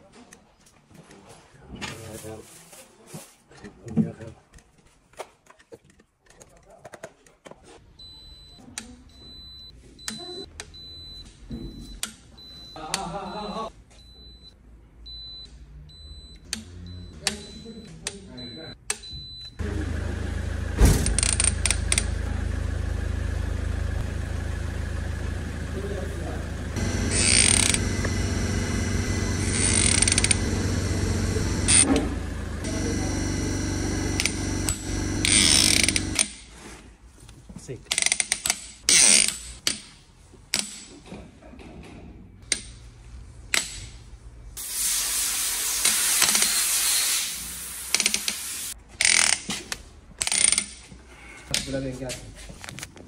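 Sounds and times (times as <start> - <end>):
loud sound with held tones: 19.5 - 36.2
ratchet clicks: 21.1 - 22.1, 27.1 - 27.8, 29.4 - 30.5, 34.2 - 36.4, 47.9 - 49.5, 50.2 - 50.8.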